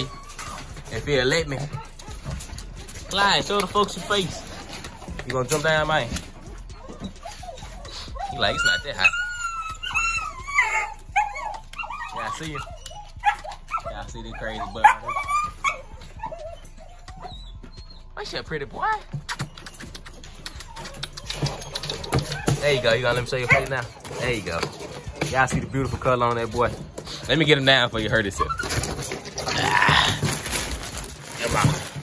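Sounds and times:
puppy claws tapping on plastic: 0:19.0 - 0:26.9.

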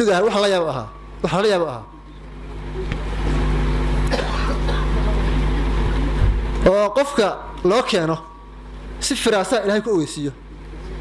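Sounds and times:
low hums: 0:00.0 - 0:11.0.

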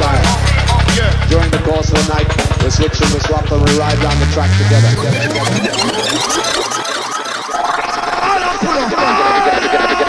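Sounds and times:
electronic music: 0:00.0 - 0:10.0
man's voice with laughter: 0:07.8 - 0:10.0.

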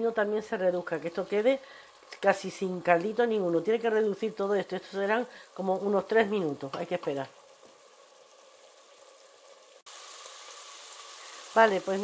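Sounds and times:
wine simmering in a pot: 0:00.0 - 0:12.0.

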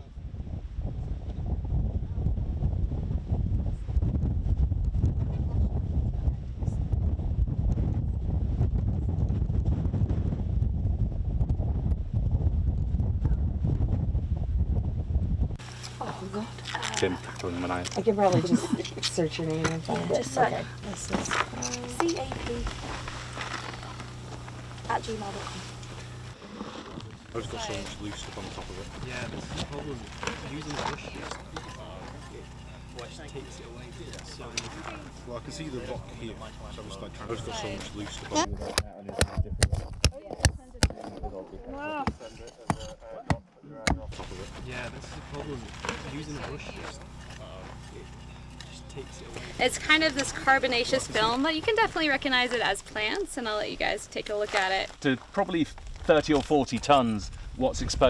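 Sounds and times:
wind buffeting microphone: 0:00.0 - 0:15.6, 0:32.2 - 0:41.7, 0:55.7 - 0:58.0
low steady background rumble: 0:00.0 - 0:43.0, 0:43.6 - 0:58.0
man speaking: 0:16.8 - 0:18.8, 0:27.3 - 0:39.5, 0:41.0 - 0:49.6, 0:55.0 - 0:58.0.

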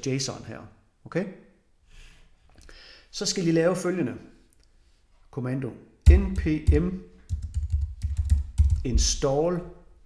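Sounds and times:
typing on computer keyboard: 0:06.1 - 0:08.9.

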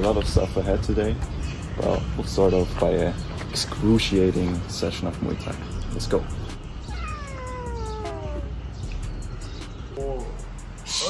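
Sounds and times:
cat meowing: 0:06.8 - 0:08.7.

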